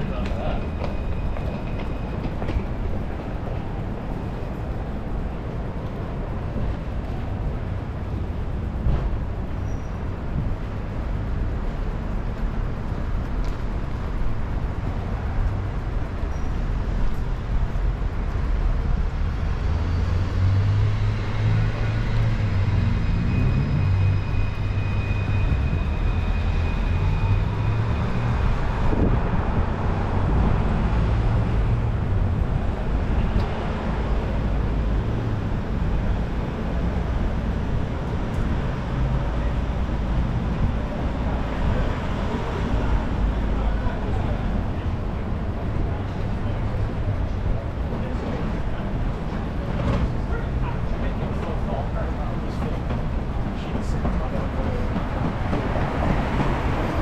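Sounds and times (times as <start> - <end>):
traffic rumble: 0.0 - 57.0.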